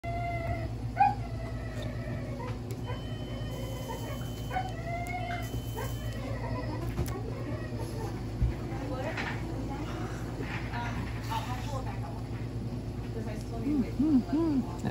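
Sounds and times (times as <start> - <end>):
dog whining and whimpering: 0.0 - 8.2
low steady hum: 0.0 - 14.9.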